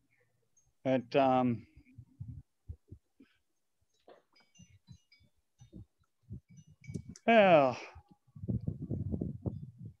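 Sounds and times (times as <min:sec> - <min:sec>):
faint low thuds: 0:08.4 - 0:10.0.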